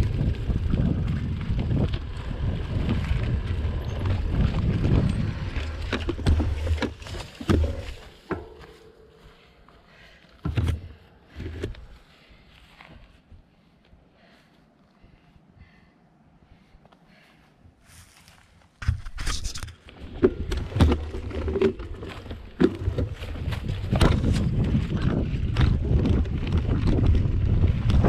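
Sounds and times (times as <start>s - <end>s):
bike rattles and knocks: 0.0s - 9.5s, 10.4s - 12.0s, 18.8s - 28.0s
bike tyre rumble on dirt: 0.0s - 13.2s, 17.1s - 28.0s.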